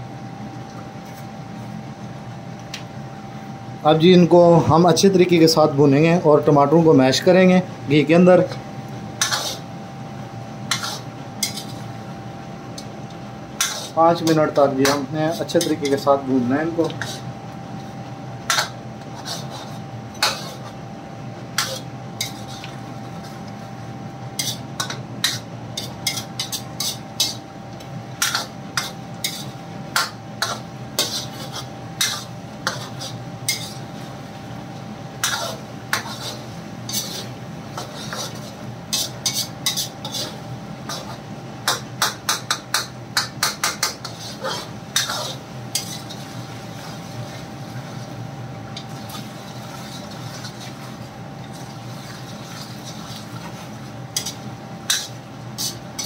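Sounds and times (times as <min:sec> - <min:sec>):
spoon scraping metal pan: 0:09.2 - 0:09.6, 0:10.7 - 0:11.9, 0:13.6 - 0:15.0, 0:16.8 - 0:17.3, 0:18.5 - 0:20.8, 0:21.6 - 0:23.4, 0:24.4 - 0:27.4, 0:28.2 - 0:33.9, 0:35.2 - 0:46.2, 0:54.2 - 0:56.0.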